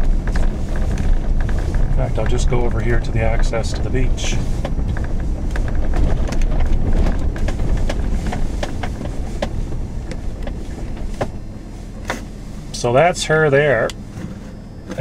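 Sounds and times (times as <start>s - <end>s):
knocks and rattles from bumps: 0.0s - 12.8s
truck engine and tyres rumbling: 0.0s - 15.0s.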